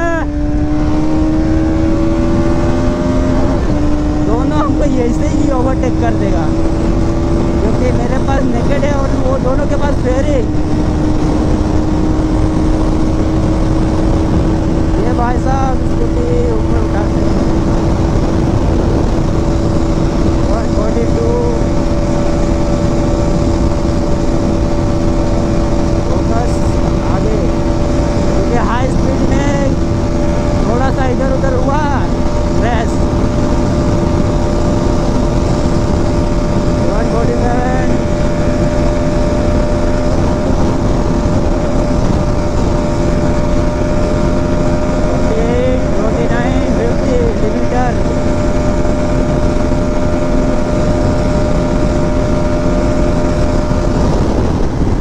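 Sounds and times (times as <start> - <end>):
motorcycle engine at high speed: 0.0 - 55.0
wind rush on microphone: 0.0 - 55.0.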